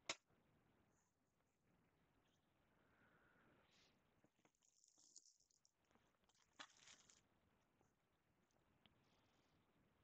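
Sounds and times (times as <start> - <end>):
crinkly rustling: 4.3 - 7.3.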